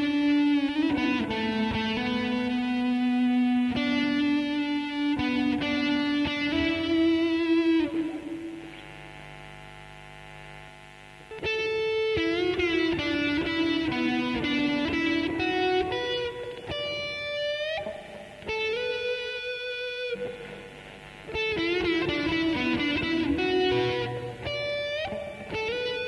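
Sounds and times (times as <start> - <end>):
electric guitar lead melody: 0.0 - 9.0, 11.2 - 26.0.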